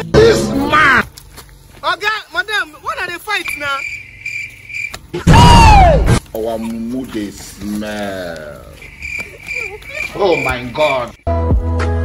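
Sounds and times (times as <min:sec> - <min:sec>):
high-pitched insect-like trill: 0:01.9 - 0:05.0, 0:08.2 - 0:11.3.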